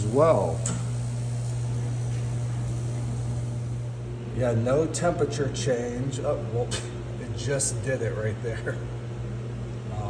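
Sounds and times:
heater fan humming: 0.0 - 10.0.

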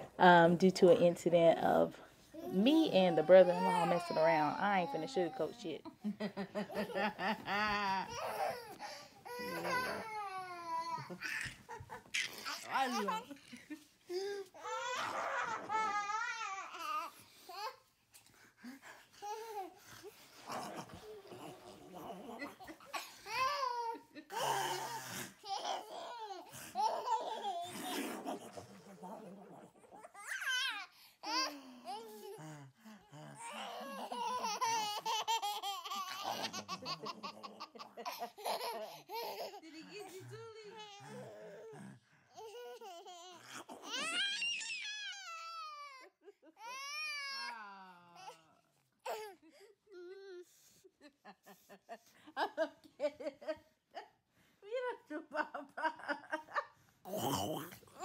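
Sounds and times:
baby crying and babbling: 2.4 - 5.4, 8.1 - 11.4, 23.3 - 27.7, 30.0 - 32.6
adult laughing: 6.2 - 8.2
baby laughing: 6.7 - 13.4, 33.4 - 39.6.

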